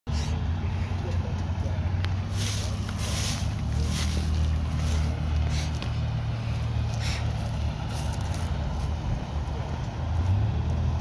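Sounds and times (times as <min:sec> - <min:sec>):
diesel engine idling: 0:00.1 - 0:11.0
faint voices: 0:00.5 - 0:07.4.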